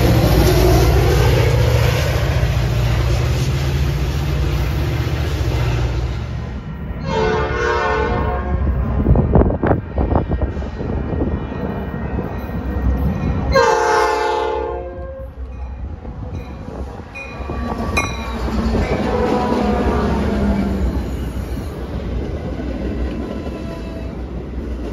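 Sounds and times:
locomotive rumble and wheel noise: 0:00.0 - 0:24.9
train air horn blasts: 0:07.0 - 0:08.8, 0:13.5 - 0:15.4, 0:18.8 - 0:20.8.

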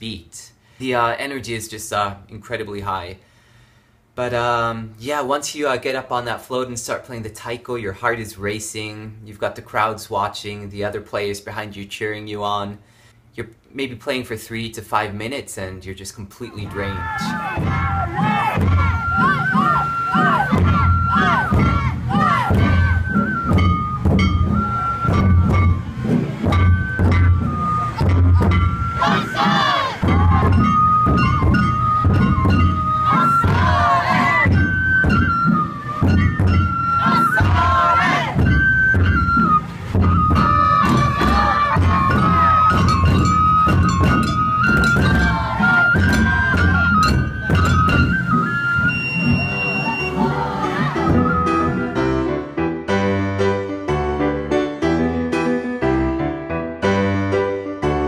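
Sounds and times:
voices calling out: 0:16.5 - 0:23.6, 0:26.9 - 0:52.1
taiko drums pounding: 0:16.6 - 0:51.9
flute melody: 0:16.7 - 0:53.6.

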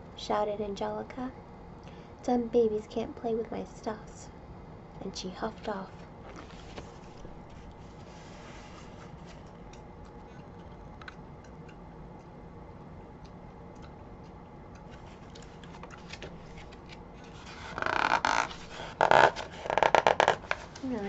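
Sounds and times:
low background hum: 0:00.0 - 0:21.0
book being handled: 0:05.5 - 0:09.6, 0:14.9 - 0:21.0.

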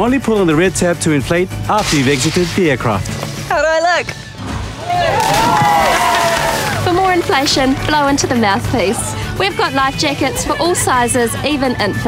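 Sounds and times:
background music: 0:00.0 - 0:12.0
people shouting whoops: 0:04.8 - 0:06.9.

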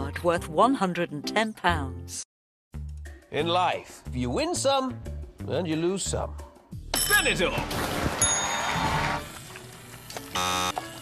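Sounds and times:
game show buzzer: 0:10.4 - 0:10.8.

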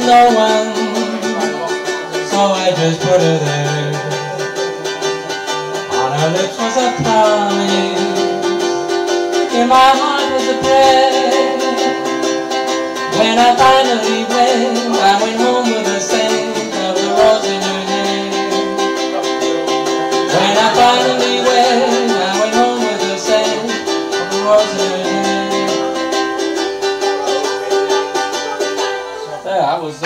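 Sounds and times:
strummed ukulele: 0:00.0 - 0:30.0.

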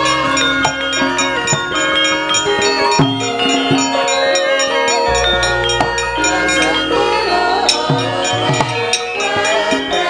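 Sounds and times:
gamelan metallophones and gong-chimes: 0:00.0 - 0:10.0.

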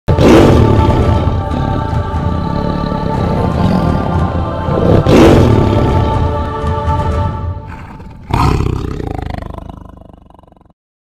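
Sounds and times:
dramatic music: 0:00.1 - 0:09.4
big cat roar: 0:04.7 - 0:06.3, 0:07.7 - 0:10.8.

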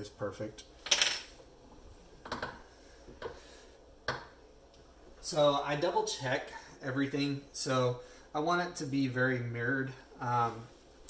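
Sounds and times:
metal tools clinking on wood: 0:00.8 - 0:01.4.

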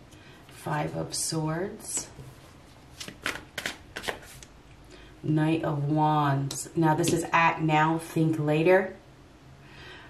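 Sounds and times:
cards flicking and sliding: 0:03.0 - 0:04.5.

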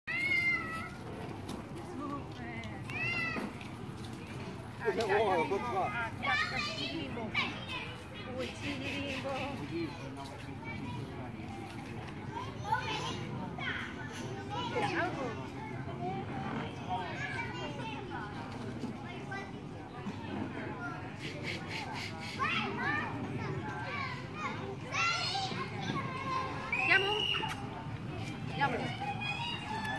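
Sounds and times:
children chattering and calling: 0:00.1 - 0:29.9
faint voices: 0:00.1 - 0:29.9.

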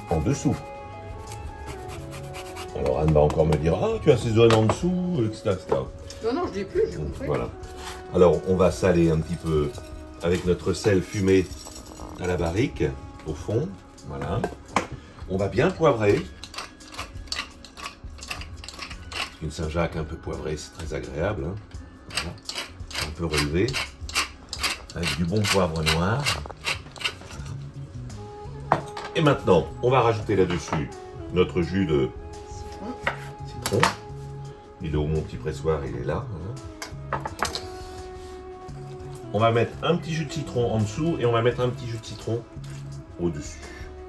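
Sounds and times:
background music with held notes: 0:00.0 - 0:44.0
pepper mill grinding: 0:16.2 - 0:19.4, 0:22.1 - 0:27.6.

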